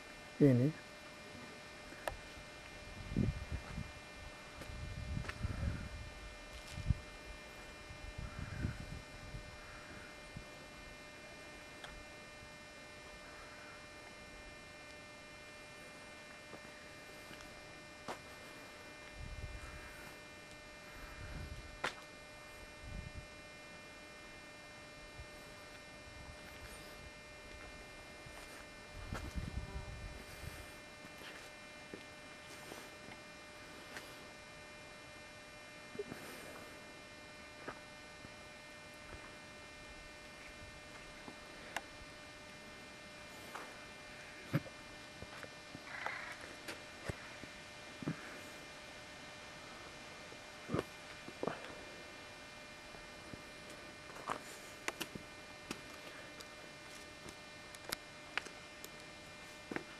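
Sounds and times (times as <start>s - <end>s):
faint electrical hum: 0.0s - 59.9s.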